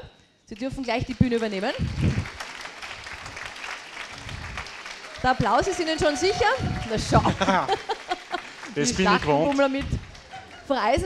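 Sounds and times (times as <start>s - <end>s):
audience applauding: 1.2s - 11.0s.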